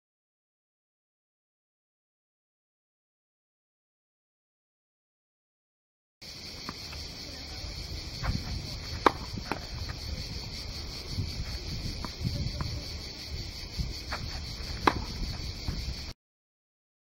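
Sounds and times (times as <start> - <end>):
tennis racket hitting ball: 8.3 - 10.0, 14.2 - 15.8.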